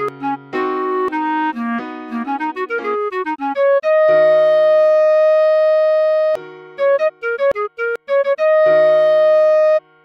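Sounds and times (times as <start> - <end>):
clarinet long note: 0.0 - 10.0.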